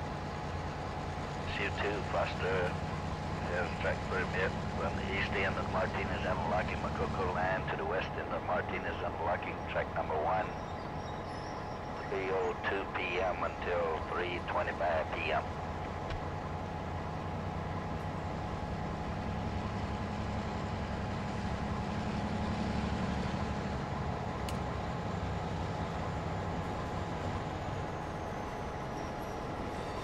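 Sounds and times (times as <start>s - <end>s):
freight train rumble: 0.0s - 30.0s.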